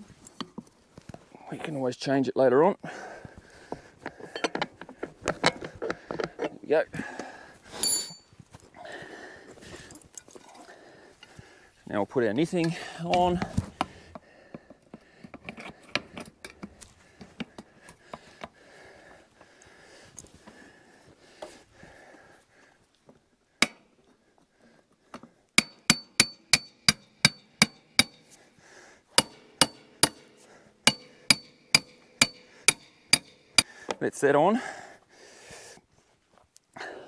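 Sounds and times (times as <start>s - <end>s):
hammer blows on metal: 29.2s - 33.7s.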